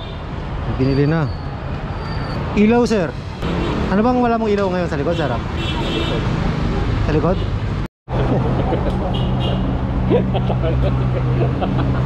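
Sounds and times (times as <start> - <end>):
people talking: 8.2 - 9.2, 10.1 - 11.8.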